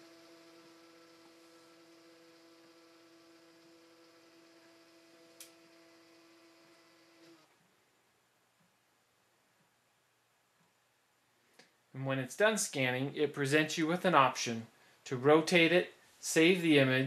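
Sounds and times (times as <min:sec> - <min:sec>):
faint scanner motor hum: 0:00.0 - 0:07.6.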